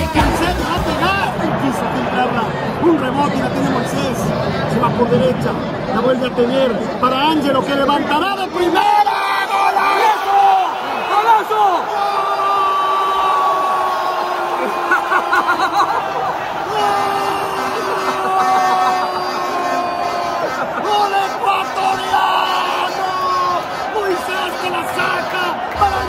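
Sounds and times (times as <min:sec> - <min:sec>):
fans shouting and cheering: 0:00.0 - 0:26.0
commentator's drawn-out goal call: 0:17.0 - 0:26.0.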